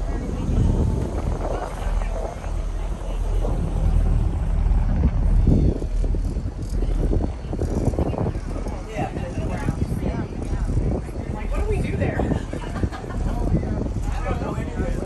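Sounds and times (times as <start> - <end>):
motor boat rumbling: 0.0 - 15.0
people talking indistinctly: 0.0 - 15.0
wind on microphone: 0.0 - 15.0.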